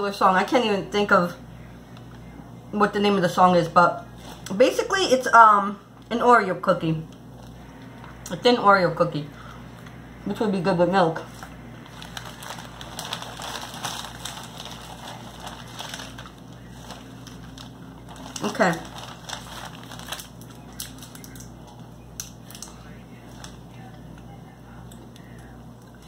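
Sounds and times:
plastic packaging crinkling: 0:04.2 - 0:04.6, 0:11.3 - 0:23.9.

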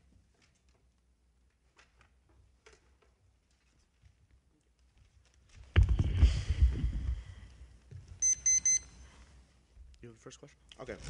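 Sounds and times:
digital timer beeps: 0:08.2 - 0:09.0.

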